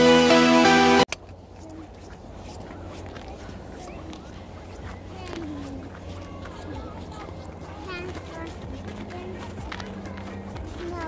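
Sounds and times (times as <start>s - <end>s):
music: 0.0s - 1.1s, 8.8s - 11.0s
faint voice: 2.6s - 11.0s.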